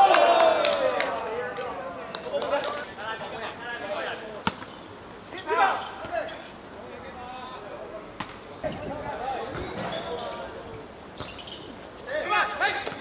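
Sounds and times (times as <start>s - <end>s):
players shouting in distance: 0.0s - 4.4s, 5.3s - 6.5s, 12.0s - 13.0s.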